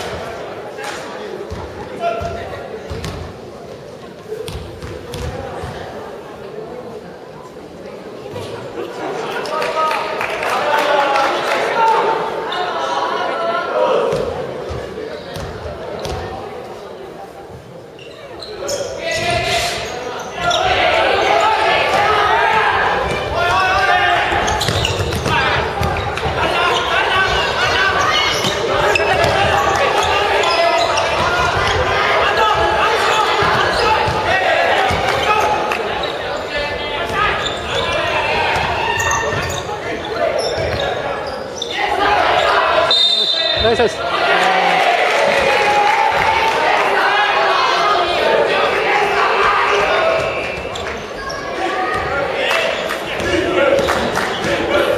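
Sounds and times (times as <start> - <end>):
basketball bouncing on wooden floor: 4.5 - 5.3
players calling out: 18.0 - 54.9.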